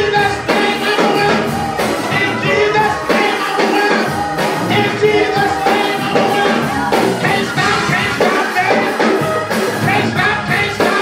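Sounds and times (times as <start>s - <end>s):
drum kit: 0.0s - 11.0s
live gospel music: 0.0s - 11.0s.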